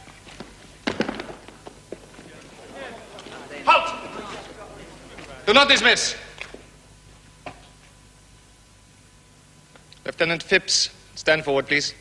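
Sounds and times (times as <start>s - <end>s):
footsteps shuffling: 0.0s - 8.0s
low voices: 1.4s - 6.7s
loud call: 3.3s - 5.5s.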